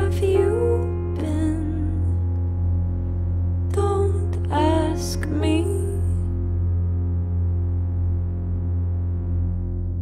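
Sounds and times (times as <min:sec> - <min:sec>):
deep bass drone: 0:00.0 - 0:10.0
held synthesizer chord: 0:00.0 - 0:10.0.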